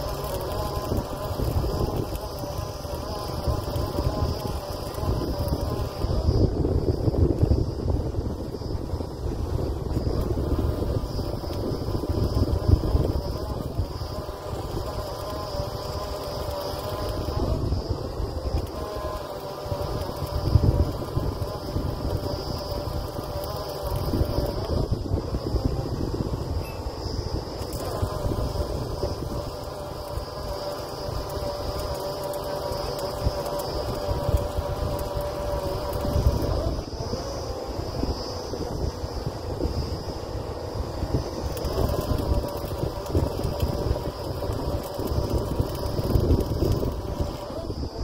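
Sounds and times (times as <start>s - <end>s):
wind rumbling on microphone: 0.0s - 48.0s.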